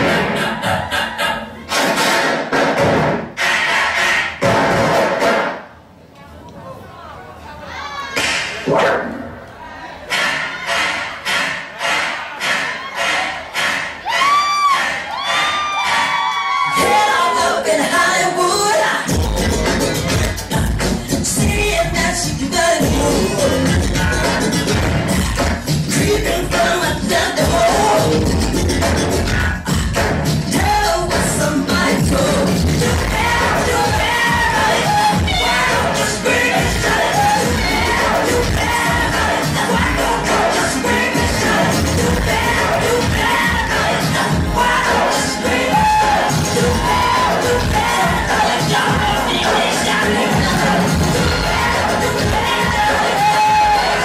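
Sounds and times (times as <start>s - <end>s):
electronic dance music: 0.0s - 5.8s, 10.0s - 54.0s
crowd shouting and cheering: 7.5s - 54.0s.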